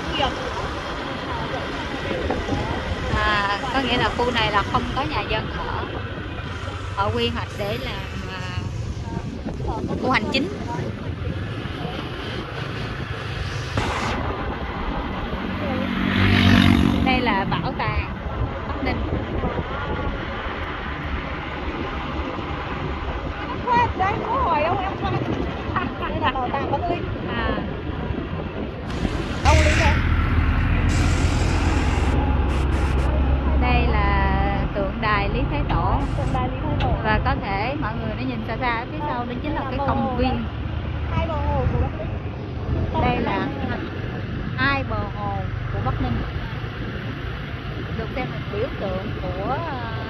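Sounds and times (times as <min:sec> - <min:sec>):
people talking: 0:00.0 - 0:06.0, 0:06.6 - 0:12.2, 0:15.5 - 0:19.2, 0:23.3 - 0:27.8, 0:29.4 - 0:30.2, 0:30.9 - 0:42.2, 0:42.8 - 0:44.0, 0:44.6 - 0:46.8, 0:47.9 - 0:50.0
passing vehicle engine hum: 0:00.0 - 0:50.0
traffic rumble from moving vehicle: 0:00.0 - 0:50.0
burst of hiss: 0:30.8 - 0:33.1.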